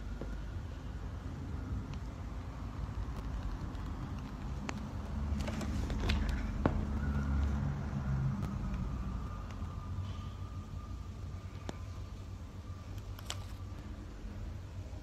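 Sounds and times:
faint steady tone: 6.5 - 15.0
film package clicks and crinkles: 12.9 - 13.8.

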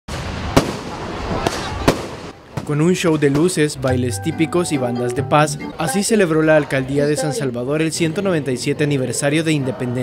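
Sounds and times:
rumble of fireworks display: 0.1 - 2.4
fireworks bangs: 0.1 - 2.6.

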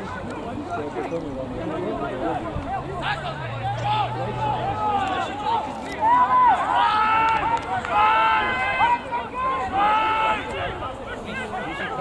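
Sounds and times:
voices shouting: 1.7 - 12.0.

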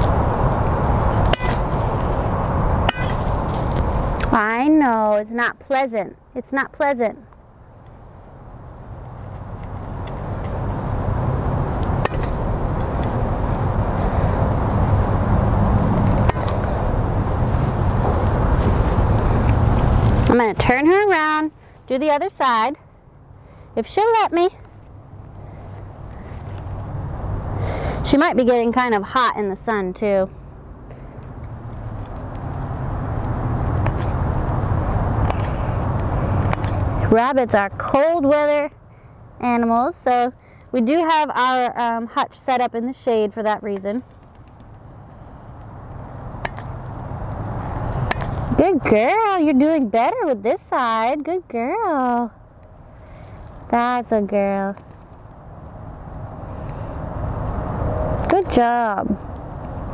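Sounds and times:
vehicle engine rumble: 0.0 - 59.9.

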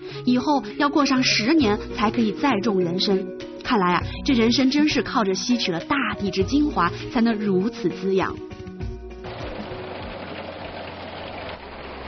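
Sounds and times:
tractor engine humming: 9.2 - 12.0.

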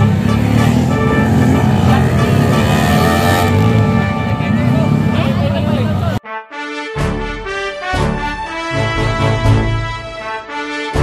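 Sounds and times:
dirt bike engine running: 0.0 - 6.1
background music: 0.0 - 11.0.

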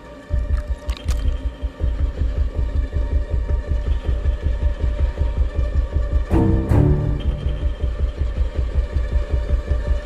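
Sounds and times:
dark hum: 0.0 - 10.0
low throbbing pulse: 0.0 - 10.0.

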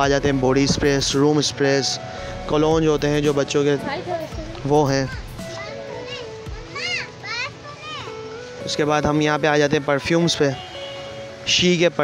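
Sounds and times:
child calling: 4.2 - 8.6.

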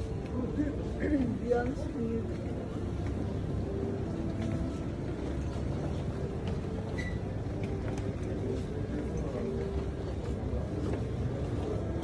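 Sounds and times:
faint murmur of voices: 0.0 - 12.0
low rumble of indoor hall: 0.0 - 12.0.

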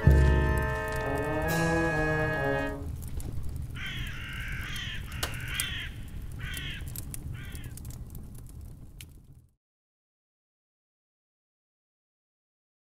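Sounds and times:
low rumble: 0.0 - 3.2
crow cawing: 3.8 - 7.7.

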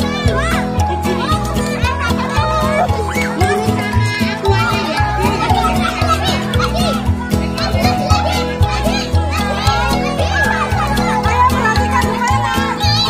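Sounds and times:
children shouting and cheering: 0.0 - 13.0
music with steady beat: 0.0 - 13.0.

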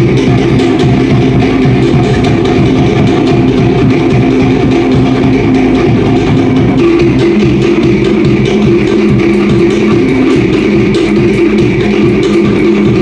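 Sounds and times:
drum ensemble playing: 0.0 - 13.0.

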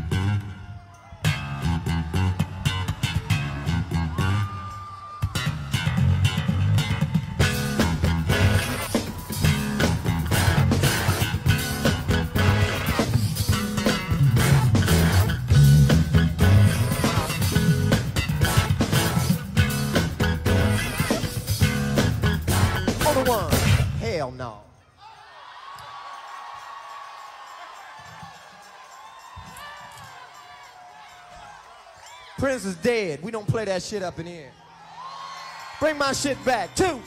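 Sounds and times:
bass guitar riff: 0.0 - 0.6, 5.4 - 23.9
band with guitar and drums: 1.2 - 24.0.

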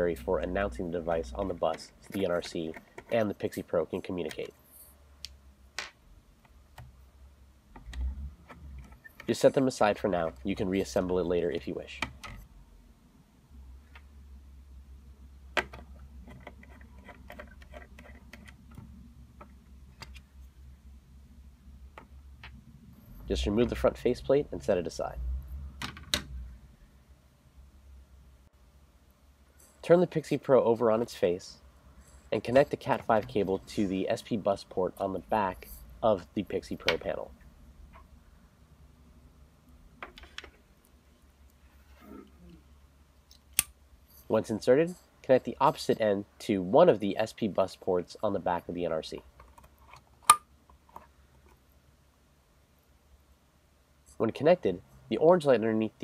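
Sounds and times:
faint low hum: 0.0 - 56.0.

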